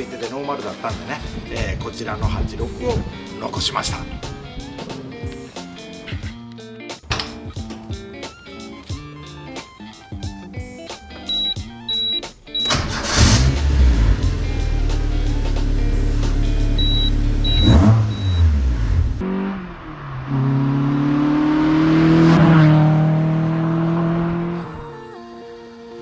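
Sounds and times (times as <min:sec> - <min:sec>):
background music with sustained notes: 0:00.0 - 0:18.0, 0:24.0 - 0:26.0
car engine starting and revving: 0:11.3 - 0:24.9.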